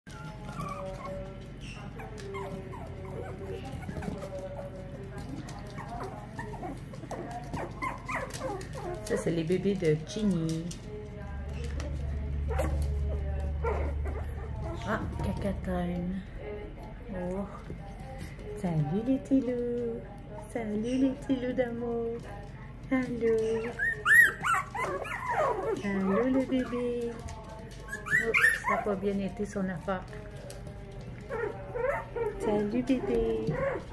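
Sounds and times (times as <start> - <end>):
puppies whimpering and whining: 0.1 - 9.5, 11.6 - 15.4, 23.3 - 29.5, 30.1 - 33.9.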